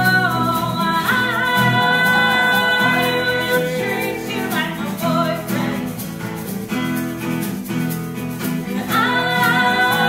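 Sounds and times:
woman singing: 0:00.0 - 0:06.1, 0:08.6 - 0:10.0
strummed acoustic guitars: 0:00.0 - 0:10.0.

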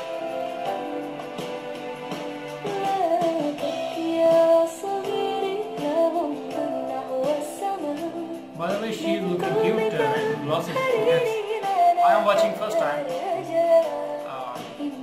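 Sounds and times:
electronic keyboard chords: 0:00.0 - 0:15.0
woman singing: 0:02.6 - 0:15.0.

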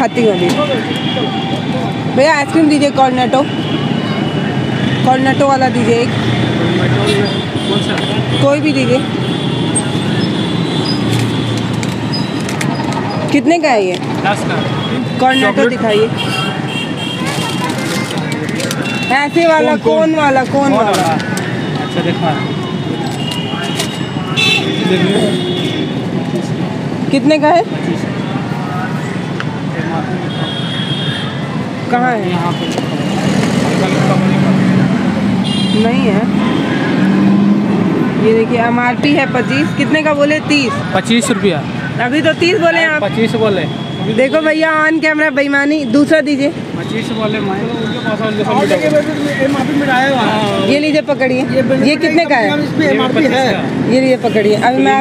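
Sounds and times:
street traffic rumble: 0:00.0 - 0:55.0
faint voices: 0:12.0 - 0:55.0.

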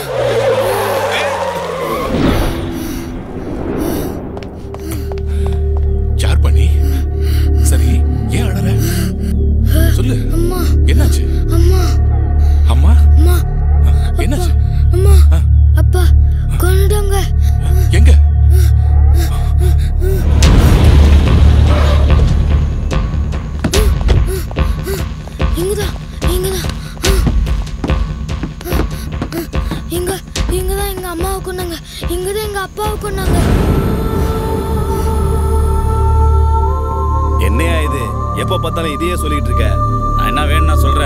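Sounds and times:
tyres skidding: 0:00.0 - 0:03.2
noisy swell: 0:02.0 - 0:05.2
low drone background music: 0:02.6 - 0:41.0.

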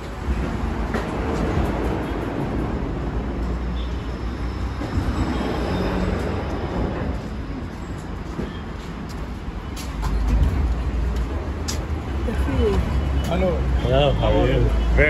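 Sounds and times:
low street rumble: 0:00.0 - 0:15.0
passers-by talking: 0:11.2 - 0:15.0.

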